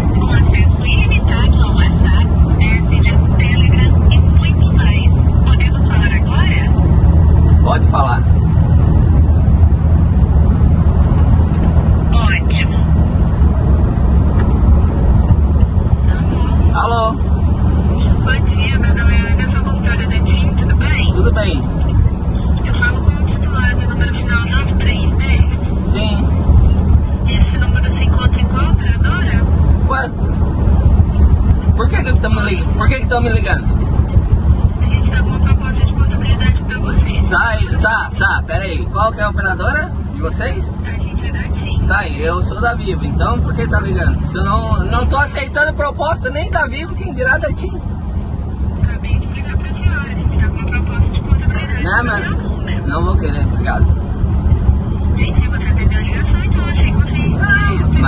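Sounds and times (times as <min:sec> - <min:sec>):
person speaking: 0:00.0 - 0:08.4, 0:31.0 - 0:47.9, 0:55.1 - 0:58.0
diesel truck engine drone: 0:00.0 - 0:58.0
road noise inside cab: 0:00.0 - 0:58.0.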